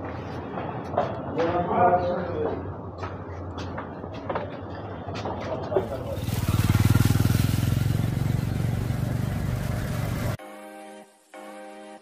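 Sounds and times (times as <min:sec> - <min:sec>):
motorcycle engine running: 0:05.8 - 0:10.4
music: 0:10.4 - 0:12.0.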